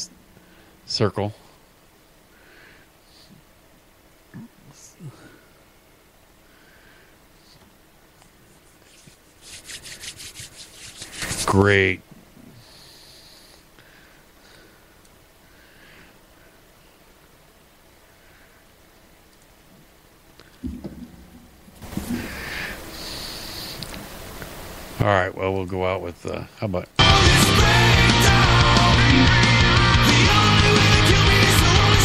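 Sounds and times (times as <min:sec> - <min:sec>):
close-miked breathing: 0:00.3 - 0:01.7, 0:02.3 - 0:03.5, 0:04.7 - 0:05.7, 0:06.4 - 0:07.7, 0:12.4 - 0:17.0, 0:18.0 - 0:18.8, 0:21.8 - 0:24.0
scratchy rubbing noises: 0:08.4 - 0:11.8.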